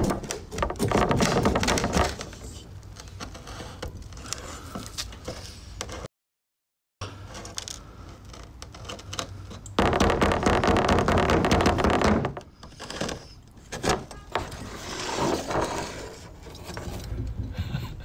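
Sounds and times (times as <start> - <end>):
metal scrape: 12.7 - 17.2.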